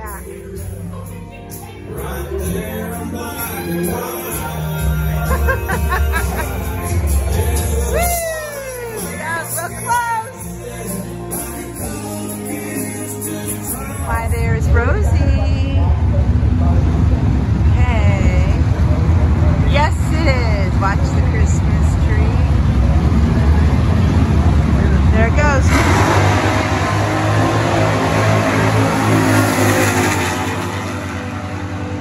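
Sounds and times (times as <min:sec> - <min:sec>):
people talking: 0:00.0 - 0:10.8, 0:13.8 - 0:25.8
drag racing cars accelerating: 0:13.2 - 0:32.0.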